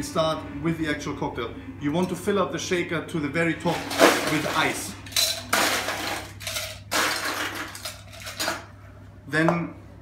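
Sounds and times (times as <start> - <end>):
ice cubes clattering into metal shaker: 3.7 - 8.6.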